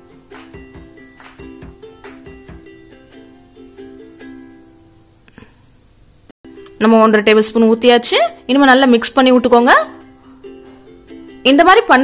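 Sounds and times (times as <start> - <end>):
light tune of plucked notes: 0.0 - 4.8.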